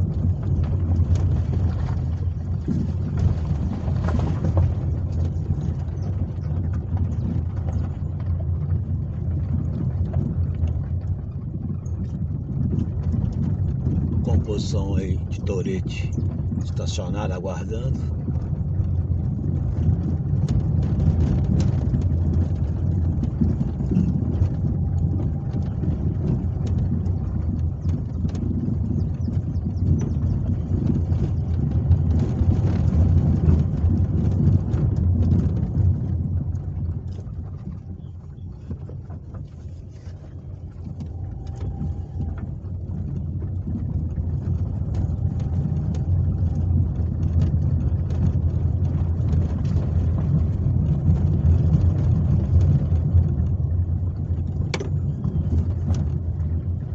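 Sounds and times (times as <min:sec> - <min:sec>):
engine and tyres rumbling: 0:00.0 - 0:56.9
small rattles and knocks: 0:00.0 - 0:56.9.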